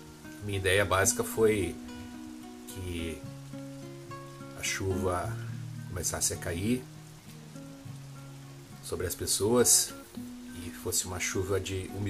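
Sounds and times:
rain falling: 0:00.0 - 0:12.0
soft background music: 0:00.0 - 0:12.0.

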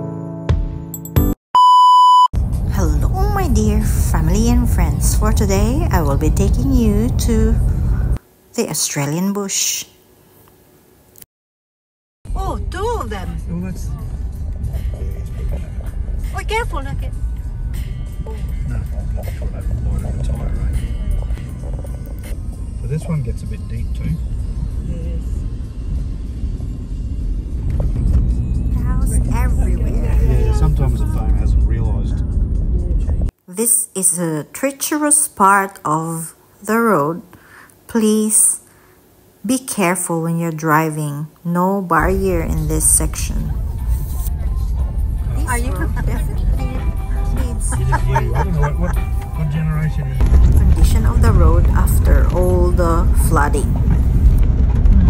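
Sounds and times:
electronic beep: 0:01.6 - 0:02.3
in-car road rumble: 0:02.4 - 0:08.2, 0:12.3 - 0:33.4, 0:42.0 - 0:55.0
woman's voice: 0:02.7 - 0:07.7, 0:08.5 - 0:10.0, 0:12.3 - 0:13.4, 0:16.3 - 0:17.2, 0:28.8 - 0:31.2, 0:32.9 - 0:38.7, 0:39.4 - 0:43.6, 0:45.4 - 0:49.0, 0:50.5 - 0:54.0.

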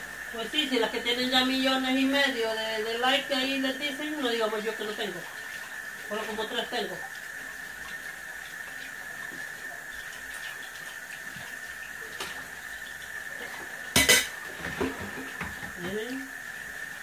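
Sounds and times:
tap water running: 0:00.0 - 0:17.0
dishes clinking: 0:13.9 - 0:15.1
dishes clattering: 0:13.9 - 0:15.8.

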